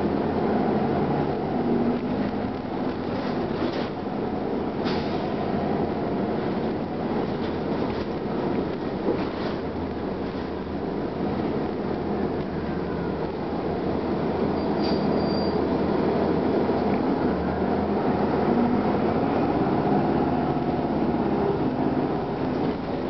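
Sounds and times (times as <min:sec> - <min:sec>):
bus diesel engine running: 0:00.0 - 0:23.0
road and body rumble: 0:00.0 - 0:23.0
brief high squeal: 0:14.6 - 0:15.7.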